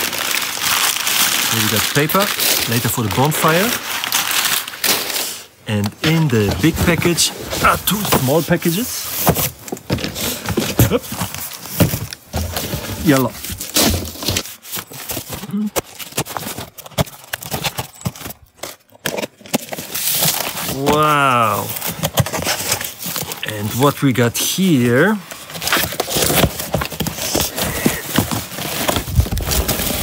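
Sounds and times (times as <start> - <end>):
blade slitting packing tape: 0.0 - 5.5, 18.6 - 20.9
cardboard and tape crackling: 0.0 - 30.0
packing paper crinkling: 0.0 - 30.0.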